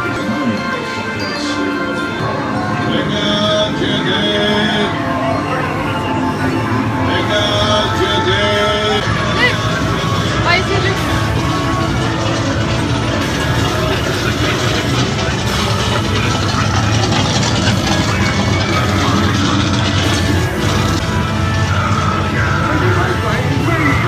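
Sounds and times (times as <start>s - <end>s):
ride soundtrack music: 0.0s - 24.0s
low rumble: 2.3s - 24.0s.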